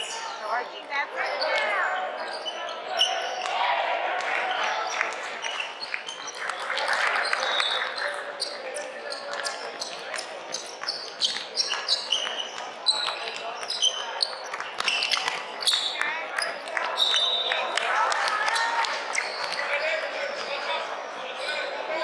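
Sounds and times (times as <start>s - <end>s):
sneaker squeaks: 0.0s - 3.7s, 4.6s - 17.7s, 18.5s - 21.8s
players shouting: 1.3s - 5.1s.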